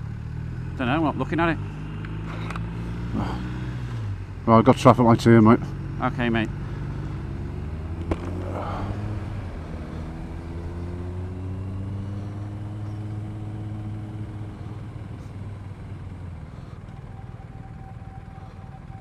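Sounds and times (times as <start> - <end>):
motorcycle engine running: 0.0 - 19.0.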